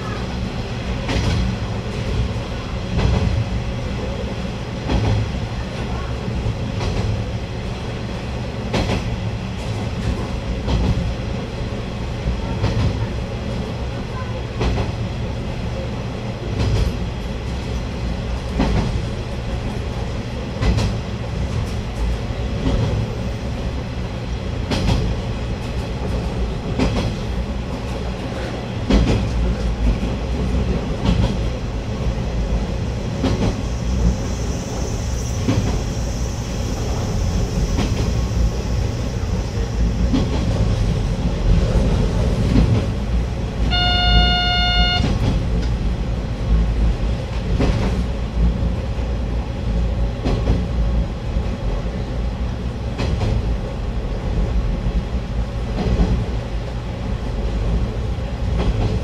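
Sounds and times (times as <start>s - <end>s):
railcar engine and running rumble: 0.0s - 59.0s
rail joints clicking: 0.9s - 3.5s, 4.8s - 5.3s, 6.5s - 11.2s, 16.5s - 23.1s, 24.6s - 34.0s, 36.8s - 51.6s, 52.8s - 54.6s, 55.6s - 56.5s, 57.3s - 59.0s
train horn blast: 43.6s - 45.3s.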